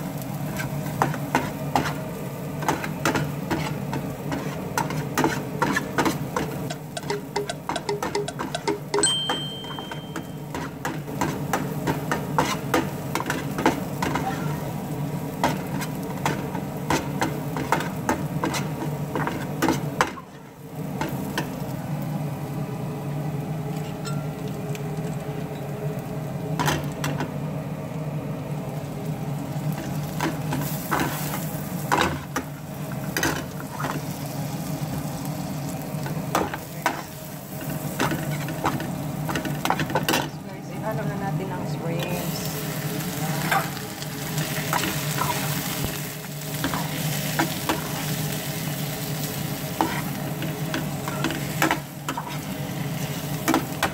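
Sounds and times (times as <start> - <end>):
garlic frying in pan: 0.0 - 40.4, 41.6 - 53.9
metal spatula scraping pan: 3.5 - 6.2.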